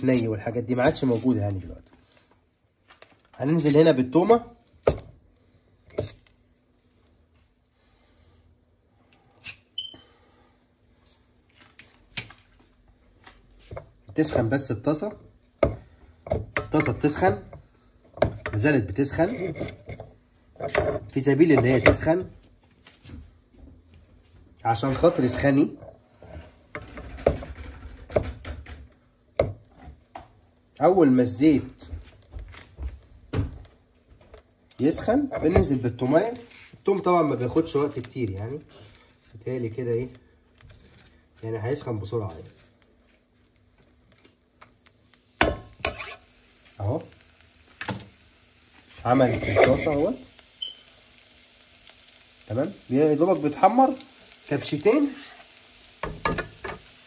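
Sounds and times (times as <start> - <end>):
person speaking: 0.0 - 1.9.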